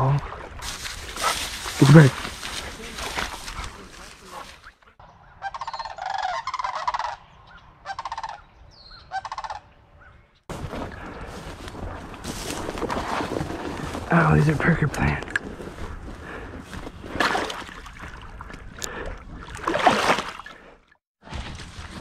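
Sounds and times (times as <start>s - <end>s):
rustling noise: 0.6s - 4.7s, 10.5s - 14.6s
geese honking: 5.2s - 10.2s.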